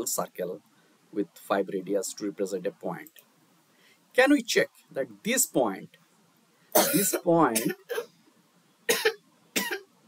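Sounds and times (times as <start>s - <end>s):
person coughing: 6.8s - 8.1s, 8.9s - 9.8s.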